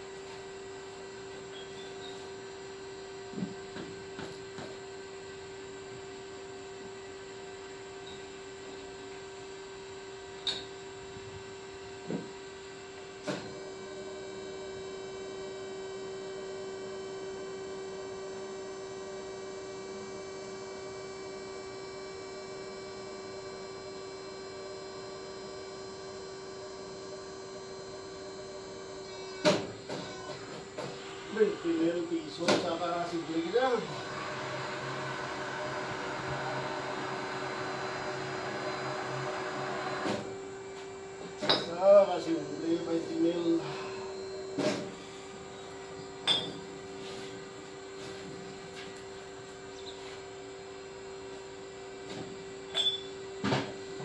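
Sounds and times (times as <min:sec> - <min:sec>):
crimping machine electric hum: 0:00.0 - 0:54.0.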